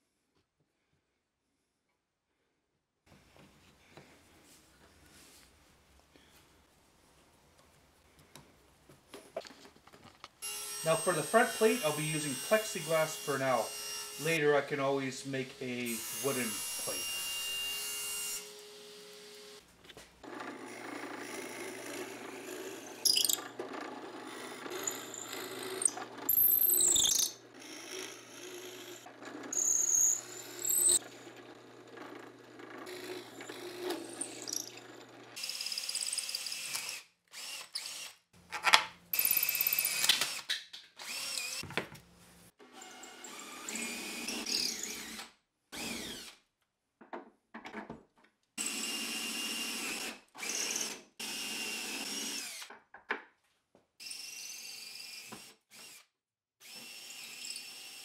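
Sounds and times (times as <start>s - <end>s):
drill press humming: 20.2s - 35.7s
drill bit squealing in wood: 20.7s - 23.6s, 24.2s - 31.2s, 32.8s - 35.1s
tool handling noise: 38.4s - 39.0s.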